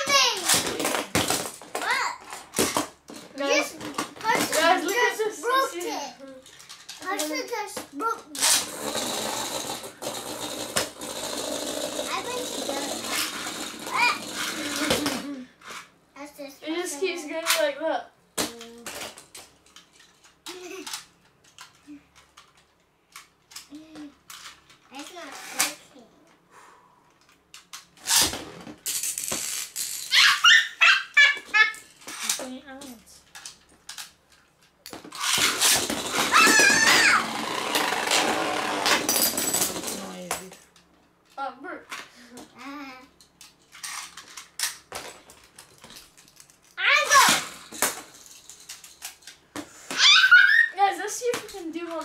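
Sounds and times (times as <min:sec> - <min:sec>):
spinning tops whirring on plastic: 0:08.3 - 0:16.0, 0:27.6 - 0:34.1, 0:35.0 - 0:40.6, 0:43.2 - 0:52.0.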